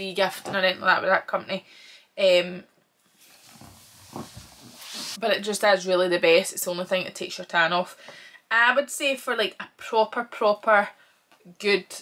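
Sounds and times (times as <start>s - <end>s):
faint rustling and handling noise: 3.0s - 5.3s.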